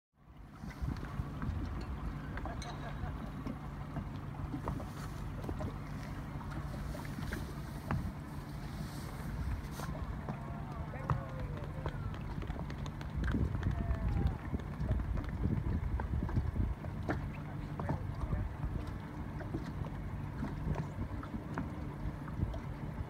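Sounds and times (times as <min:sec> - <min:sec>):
water: 0:00.1 - 0:23.0
low steady hum: 0:00.2 - 0:23.0
waves lapping against boat: 0:00.2 - 0:23.0
splashes: 0:00.4 - 0:23.0
wind on microphone: 0:00.5 - 0:02.8, 0:06.6 - 0:19.7
distant voices: 0:01.3 - 0:15.3.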